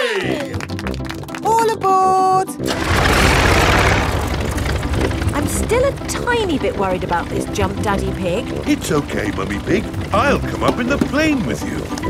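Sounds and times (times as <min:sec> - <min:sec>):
low rumble: 0:02.7 - 0:10.6
cartoon propeller plane engine: 0:02.7 - 0:12.0.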